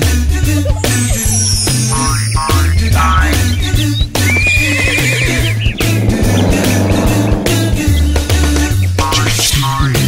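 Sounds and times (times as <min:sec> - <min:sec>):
upbeat music with bass beat: 0:00.0 - 0:04.7
horse whinny: 0:04.2 - 0:07.4.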